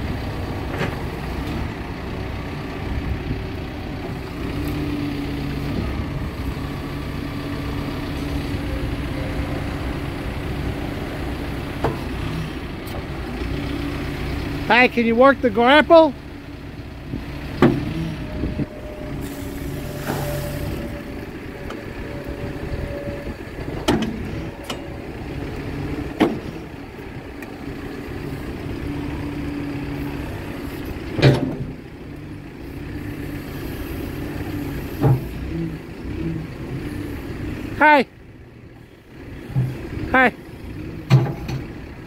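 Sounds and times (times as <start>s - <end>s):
diesel engine under hydraulic load: 0.0s - 42.0s.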